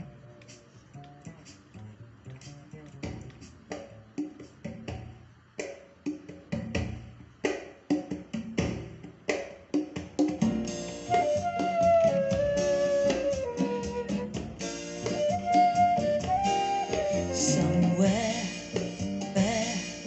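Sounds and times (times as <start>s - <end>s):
recorded music with steady beat: 0.0s - 20.0s.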